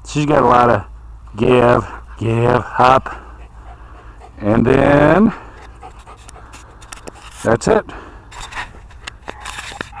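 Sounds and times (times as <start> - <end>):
camera handling rustle: 5.6 - 7.5, 8.3 - 10.0.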